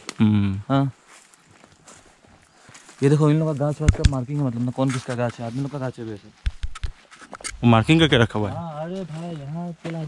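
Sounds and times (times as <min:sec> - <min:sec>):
footsteps on dirt path: 0:01.0 - 0:10.0.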